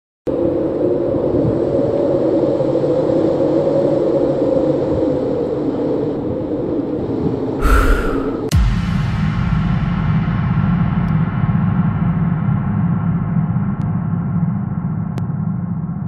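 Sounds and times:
loud hit: 7.6 - 9.4.

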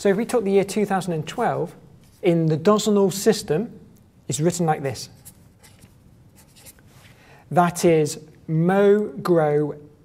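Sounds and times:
marker pen writing on paper: 5.2 - 6.8.

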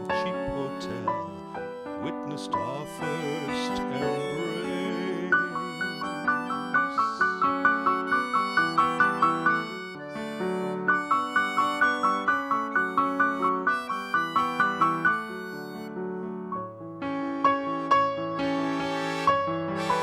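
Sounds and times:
accordion and keyboard melody: 0.0 - 20.0.

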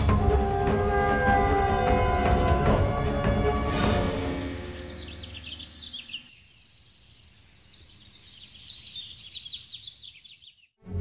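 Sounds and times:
background music: 0.0 - 6.2, 10.8 - 11.0
small birds chirping: 4.4 - 10.8.

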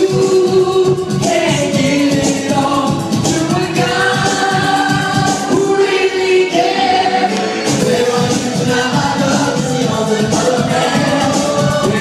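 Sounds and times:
man singing into a microphone: 0.0 - 4.1, 7.8 - 12.0
dance beat backing track: 0.0 - 12.0.

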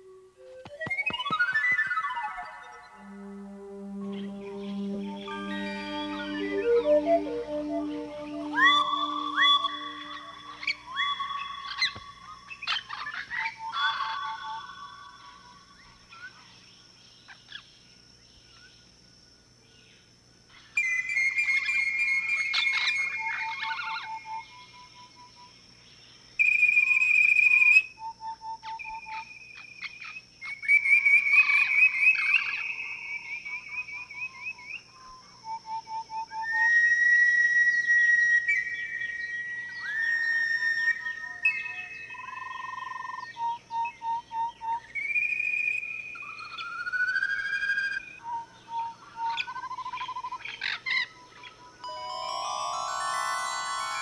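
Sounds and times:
whistle-like cartoon bird calls: 0.0 - 3.3, 4.1 - 15.5, 20.8 - 24.9, 26.4 - 34.8, 35.5 - 50.8, 51.8 - 54.0.

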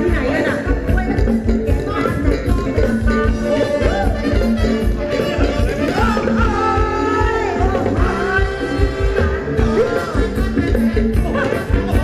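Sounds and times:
live band playing dance music: 0.0 - 12.0.

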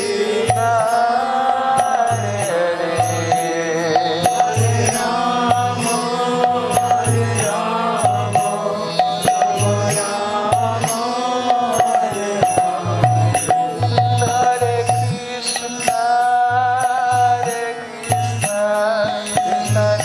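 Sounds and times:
drum beating a steady rhythm: 0.0 - 20.0
man singing a chanted melody: 0.0 - 20.0.

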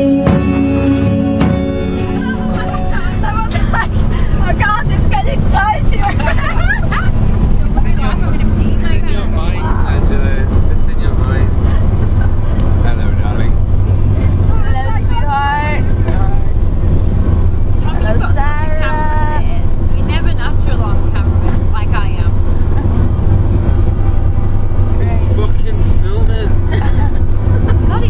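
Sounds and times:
car road and engine rumble: 0.0 - 28.0
passengers talking: 0.0 - 28.0.

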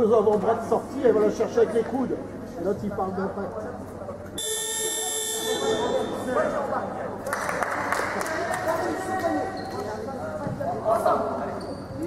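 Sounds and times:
scoreboard buzzer: 4.4 - 6.1.

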